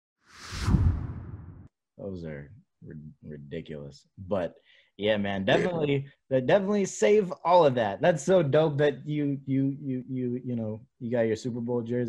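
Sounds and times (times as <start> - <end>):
whoosh sliding down in pitch: 0.4 - 1.6
deep boom: 0.5 - 1.7.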